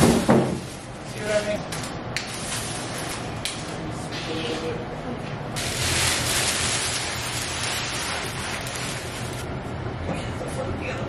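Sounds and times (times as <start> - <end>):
plastic sheeting rustling: 2.3 - 3.4, 5.6 - 9.5.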